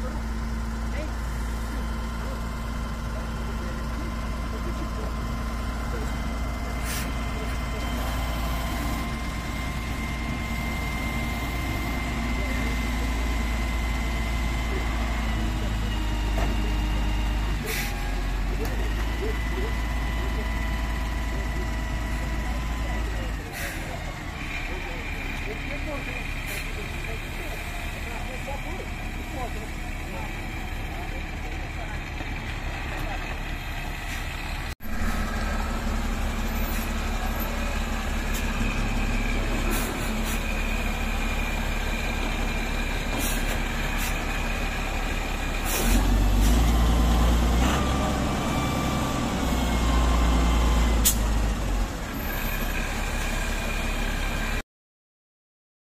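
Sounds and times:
wheel loader diesel engine: 0:00.0 - 0:54.6.

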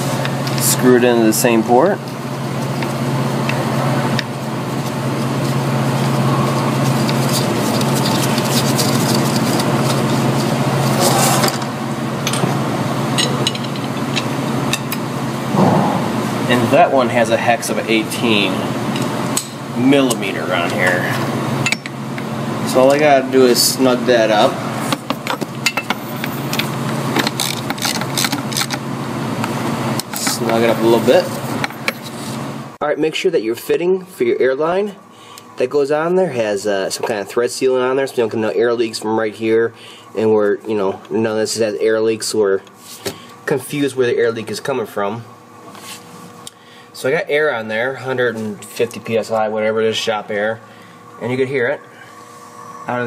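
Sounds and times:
mechanical hum of shop equipment: 0:00.0 - 0:53.0.

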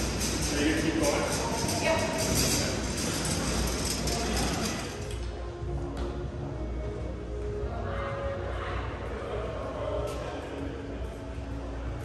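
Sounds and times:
hand cart rattling over hard floor: 0:00.0 - 0:05.2.

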